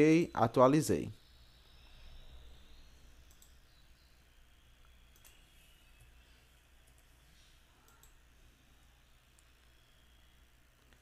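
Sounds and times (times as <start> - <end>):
faint low hum: 0.0 - 11.0
computer mouse clicks: 3.2 - 3.8, 4.8 - 6.2, 6.8 - 8.3.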